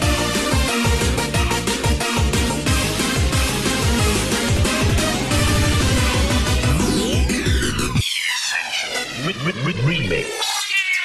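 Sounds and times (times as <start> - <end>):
electronic dance music breakdown: 2.2 - 11.0
sliding synth notes: 3.9 - 10.2.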